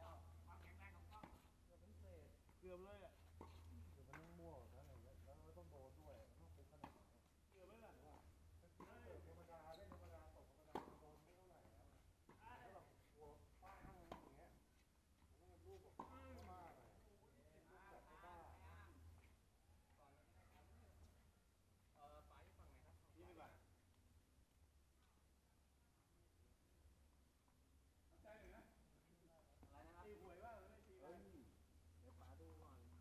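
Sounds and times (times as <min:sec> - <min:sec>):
tennis ball hitting racket: 0:10.7 - 0:11.0.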